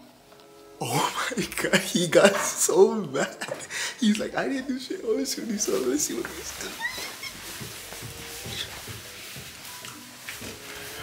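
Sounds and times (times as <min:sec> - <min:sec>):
footsteps climbing stairs: 0:05.4 - 0:11.0.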